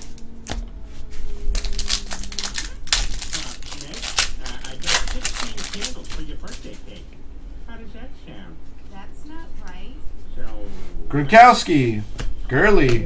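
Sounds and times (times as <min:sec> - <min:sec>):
foil wrapper tearing and crinkling: 0:01.5 - 0:07.0.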